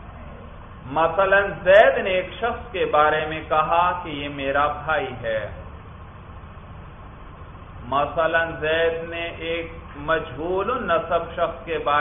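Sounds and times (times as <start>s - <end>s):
low recording hum and hiss: 0.0s - 12.0s.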